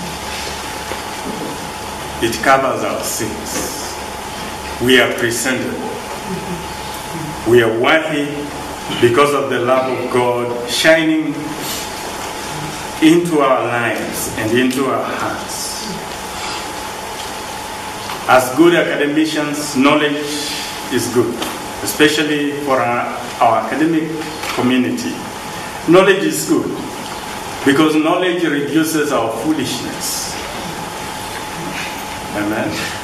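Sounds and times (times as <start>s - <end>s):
faint high hum: 0.0s - 33.0s
steady recording hiss: 0.0s - 33.0s.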